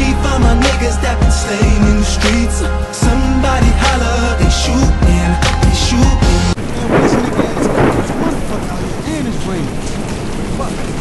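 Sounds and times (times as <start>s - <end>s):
hip hop music: 0.0s - 6.6s
noisy rumble: 0.0s - 11.0s.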